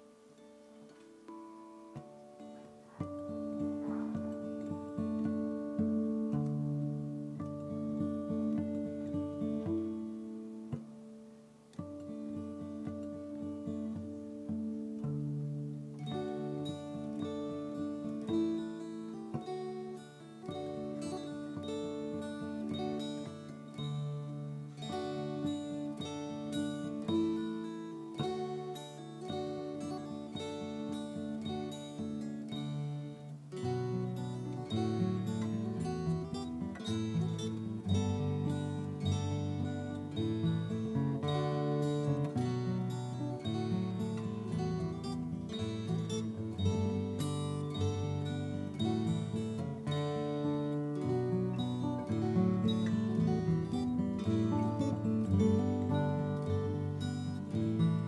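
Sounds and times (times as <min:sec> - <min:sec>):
fingerpicked acoustic guitar: 0:00.0 - 0:58.0
mountain dulcimer: 0:00.0 - 0:58.0.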